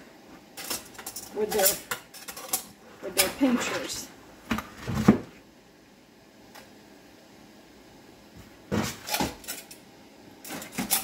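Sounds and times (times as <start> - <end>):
metal tongs clattering against bowl: 0.6 - 3.4, 9.1 - 9.8, 10.4 - 11.0.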